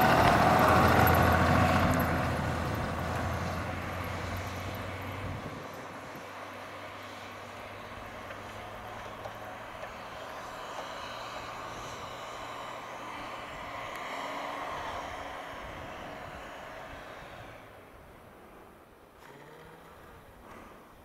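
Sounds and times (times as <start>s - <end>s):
truck engine running hard: 0.0s - 20.7s
tyres spinning in snow: 0.0s - 21.0s.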